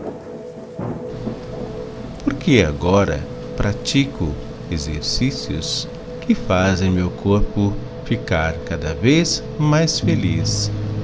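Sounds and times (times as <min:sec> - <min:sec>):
low thunder rumble: 0:00.0 - 0:08.3
steady rain: 0:00.0 - 0:11.0
steady held tones: 0:01.1 - 0:11.0.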